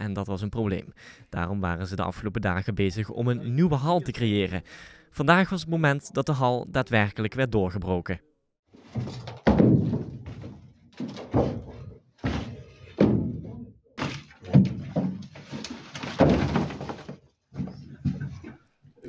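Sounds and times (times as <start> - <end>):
heavy thuds of falling blocks: 8.8 - 18.5
crumbling sliding rubble: 14.1 - 18.4.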